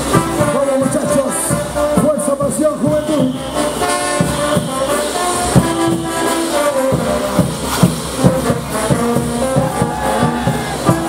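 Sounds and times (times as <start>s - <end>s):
brass notes: 0.0s - 11.0s
drum beat: 1.1s - 11.0s.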